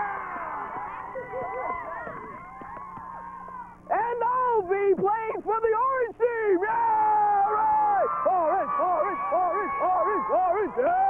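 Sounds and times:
children shouting and cheering: 0.0s - 3.9s, 6.8s - 11.0s.

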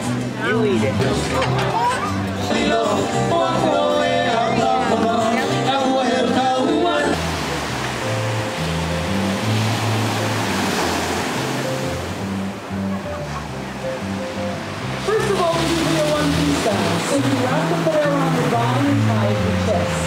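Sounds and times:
music with singing: 0.0s - 9.2s, 12.0s - 20.0s
low bass notes: 0.0s - 20.0s
ocean surf breaking: 6.7s - 20.0s.

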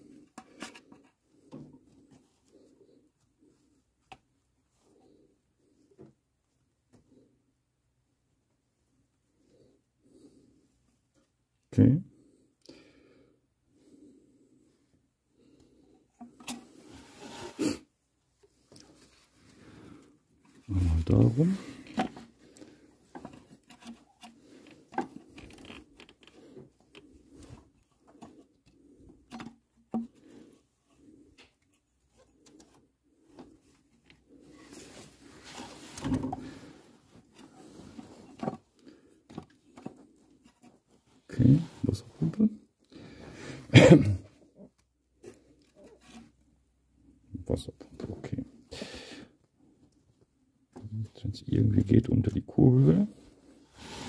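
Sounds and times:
man muttering: 43.7s - 44.3s.

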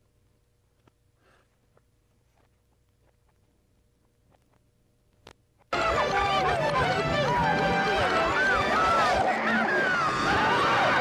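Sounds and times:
background music: 5.8s - 11.0s
reversed voices shouting: 5.8s - 11.0s.

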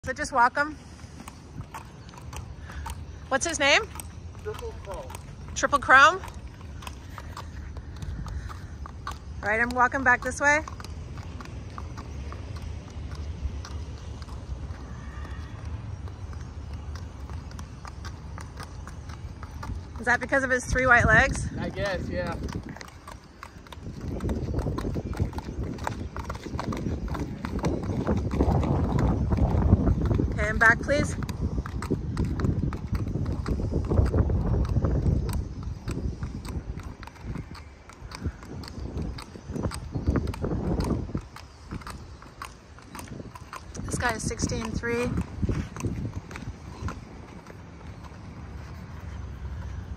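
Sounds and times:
horse hooves on gravel: 0.0s - 49.9s.

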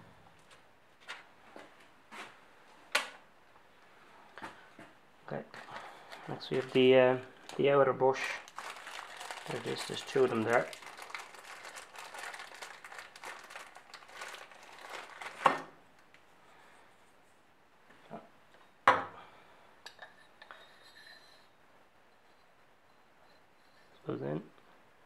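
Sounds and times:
plastic bags crinkling: 5.6s - 15.8s.

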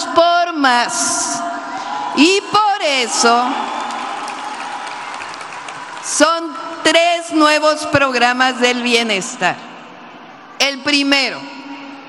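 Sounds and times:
audience applauding: 3.2s - 6.2s.

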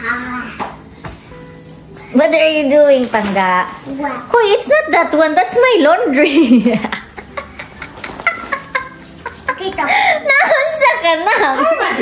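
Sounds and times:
woman laughing: 6.2s - 10.6s, 11.2s - 12.0s.

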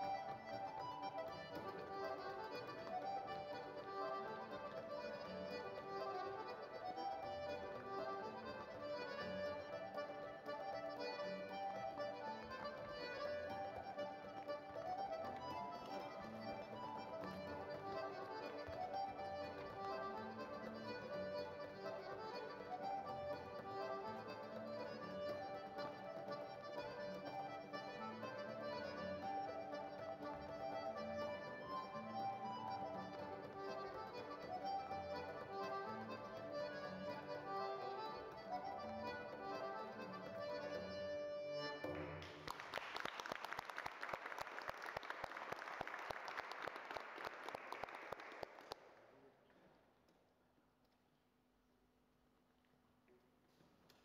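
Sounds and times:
accordion playing lively tune: 0.0s - 42.7s
applause: 41.9s - 49.6s.

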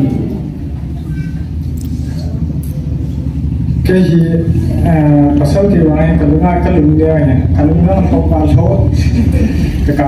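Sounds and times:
man speaking in a large hall: 0.0s - 0.6s, 2.9s - 10.0s
steady low rumble: 0.0s - 10.0s.

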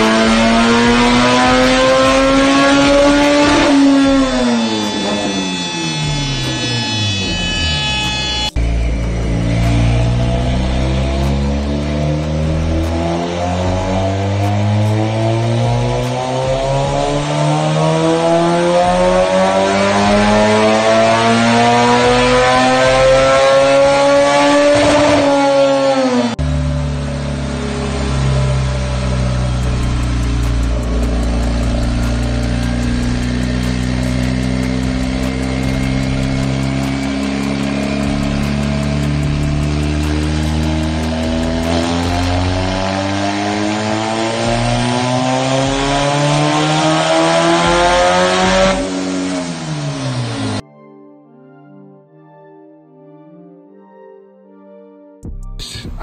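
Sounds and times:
turbocharged car engine revving: 0.0s - 50.6s.

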